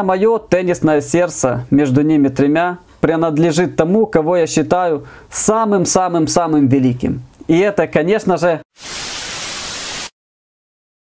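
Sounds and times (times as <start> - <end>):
television static hiss: 8.8 - 10.1.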